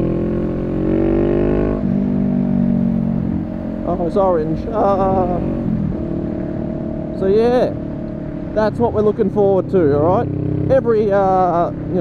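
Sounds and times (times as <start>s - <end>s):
motorcycle engine accelerating: 0.0s - 12.0s.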